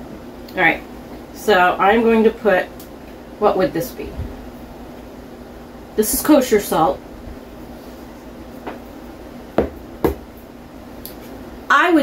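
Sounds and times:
low room hum: 0.0s - 12.0s
bowl knocking on metal pot: 9.6s - 10.2s.

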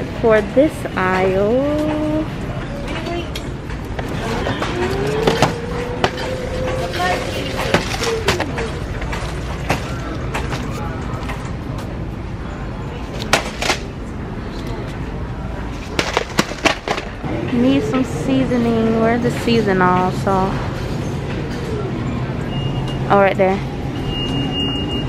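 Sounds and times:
store background noise: 0.0s - 25.0s
shopping cart rattling: 2.9s - 11.5s.

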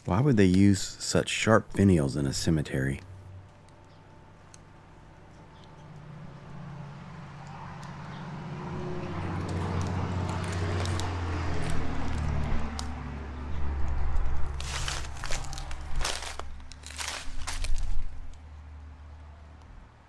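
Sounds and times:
low rumble: 8.6s - 18.4s
footsteps crunching dry leaves: 9.2s - 12.9s, 14.3s - 18.4s.

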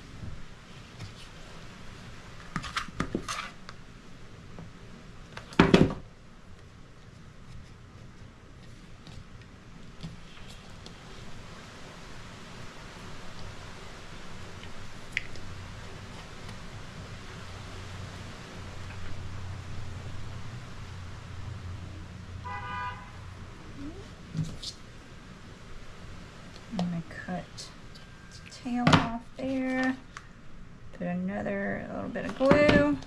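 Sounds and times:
low steady rumble: 6.1s - 33.0s.

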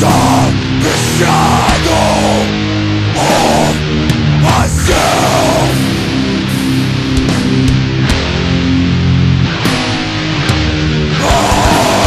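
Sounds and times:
distorted electric guitars: 0.0s - 12.0s
drum and cymbal hits: 5.6s - 8.0s.

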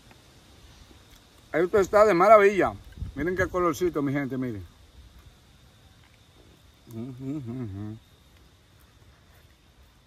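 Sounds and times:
thin steady high tone: 0.0s - 10.0s
man humming while eating: 6.8s - 8.1s.

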